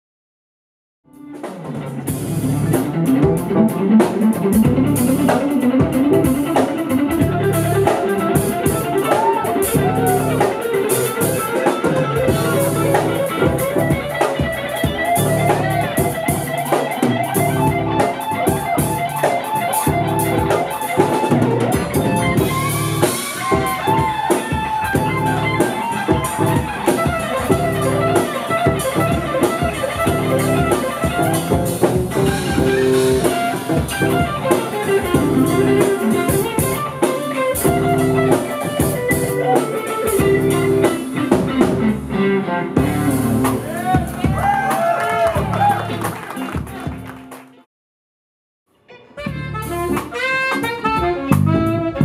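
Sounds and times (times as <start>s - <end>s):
electric guitar: 1.1s - 47.6s, 48.8s - 52.0s
drum kit: 1.1s - 47.7s, 49.2s - 52.0s
saxophones: 22.0s - 41.0s.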